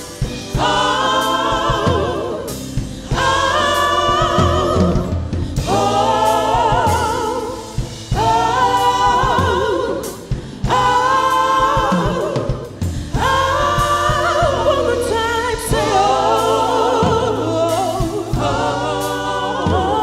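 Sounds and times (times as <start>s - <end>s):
gospel choir singing: 0.0s - 20.0s.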